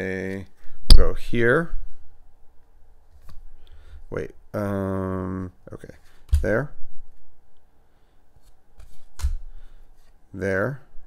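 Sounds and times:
cardboard cards rustling: 0:08.4 - 0:10.2.

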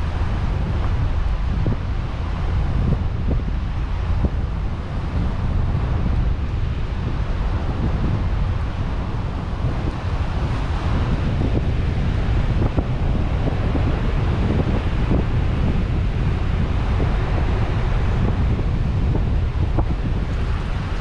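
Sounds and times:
tyre and wind rumble: 0:00.0 - 0:21.0.

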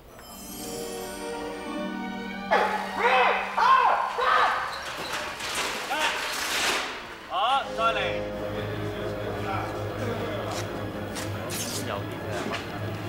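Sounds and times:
wordless shouts and yells: 0:02.5 - 0:04.7.

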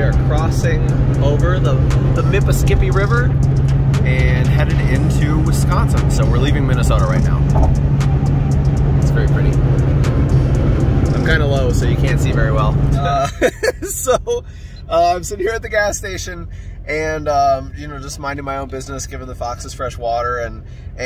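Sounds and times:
car engine and road drone: 0:00.0 - 0:21.0.

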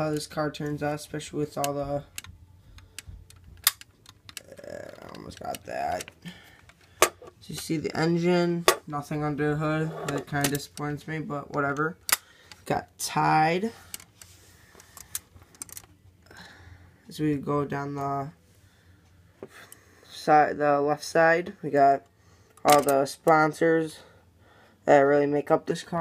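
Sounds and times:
faint low hum: 0:00.0 - 0:26.0.

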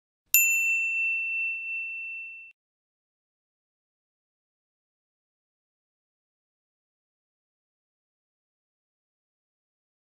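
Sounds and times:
bell ding: 0:00.4 - 0:02.6.

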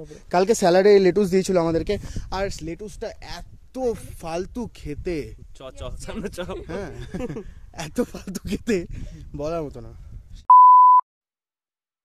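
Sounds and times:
high-pitched electronic beep: 0:10.5 - 0:11.0.

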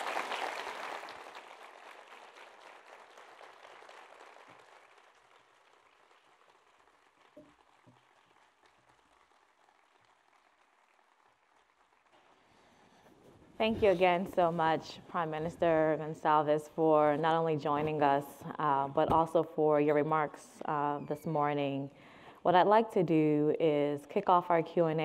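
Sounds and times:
audience applause: 0:00.0 - 0:12.6.

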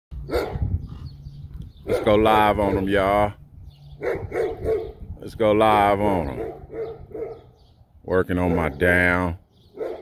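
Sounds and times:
dog barking: 0:00.2 - 0:00.7, 0:01.8 - 0:02.9, 0:04.0 - 0:05.0, 0:06.3 - 0:07.6, 0:09.7 - 0:10.0.

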